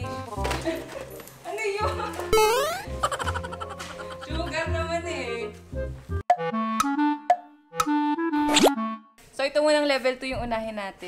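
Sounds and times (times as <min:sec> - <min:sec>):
playful music jingle: 0:02.3 - 0:05.2, 0:06.2 - 0:09.2
woman speaking: 0:09.4 - 0:11.0.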